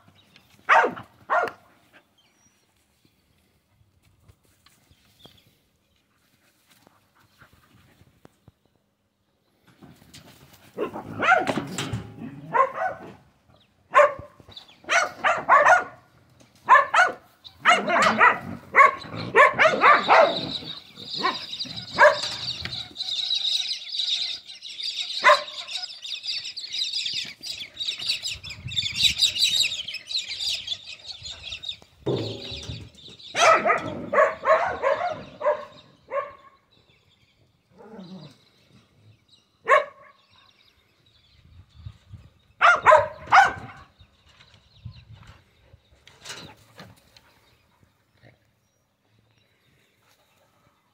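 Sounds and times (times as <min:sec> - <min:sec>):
animal sounds: 0:16.7 - 0:36.8, 0:37.4 - 0:39.2.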